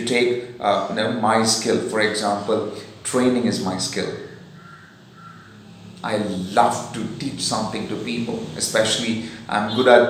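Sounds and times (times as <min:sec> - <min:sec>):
faint bird calls: 0:04.2 - 0:05.9.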